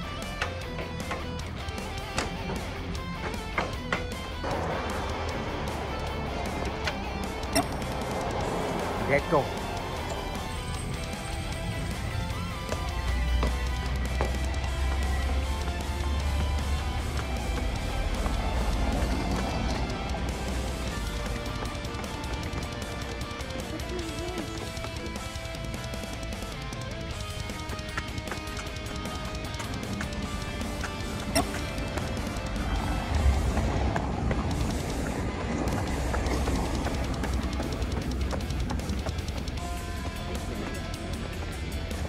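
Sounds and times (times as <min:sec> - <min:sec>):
background music with heavy bass: 0:00.0 - 0:42.0.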